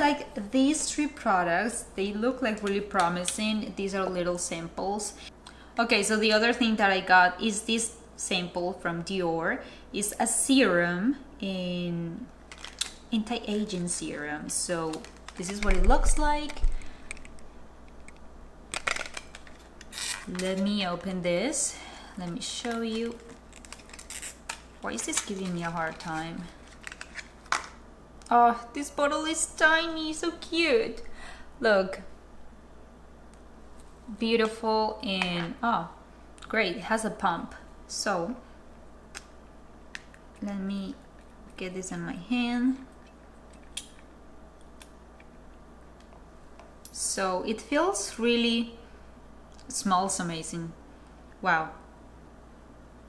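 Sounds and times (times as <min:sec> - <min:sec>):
steady low hum: 0:00.0 - 0:53.0
packaging clicks and rustles: 0:12.5 - 0:13.0, 0:14.8 - 0:20.7, 0:22.4 - 0:27.8.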